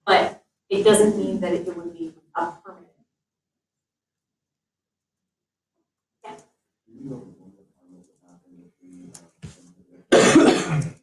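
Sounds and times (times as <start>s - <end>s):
person coughing: 10.1s - 11.0s.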